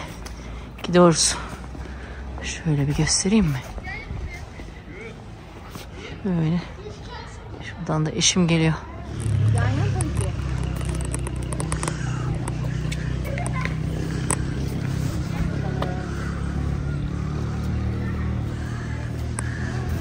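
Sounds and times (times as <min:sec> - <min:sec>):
faint voices: 0:00.0 - 0:20.0.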